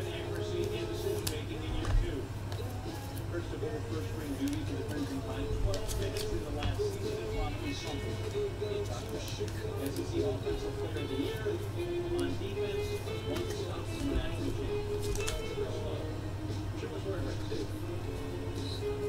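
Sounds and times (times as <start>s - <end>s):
television sports broadcast: 0.0s - 19.0s.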